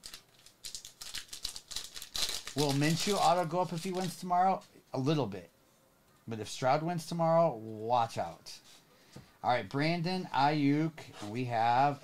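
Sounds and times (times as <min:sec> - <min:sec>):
foil wrapper crinkling: 0:00.0 - 0:04.3.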